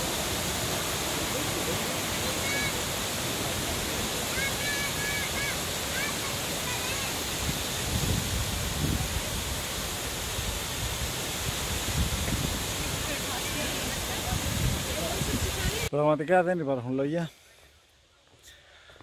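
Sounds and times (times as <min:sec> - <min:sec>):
waterfall rushing: 0:00.0 - 0:15.9.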